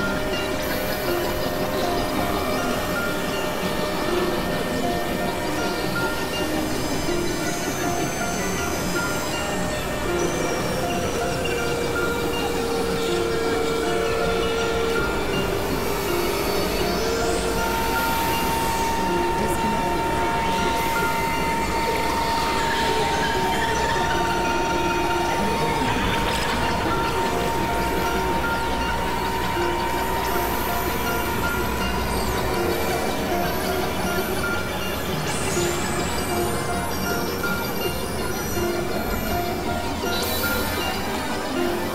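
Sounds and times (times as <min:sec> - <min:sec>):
long high tone: 0:00.0 - 0:41.9
synthesizer drone and hiss: 0:00.0 - 0:41.9.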